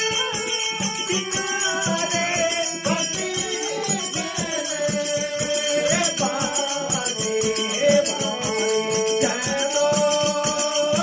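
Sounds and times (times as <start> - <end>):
harmonium playing held notes: 0.0 - 10.6
jingling hand percussion: 0.0 - 11.0.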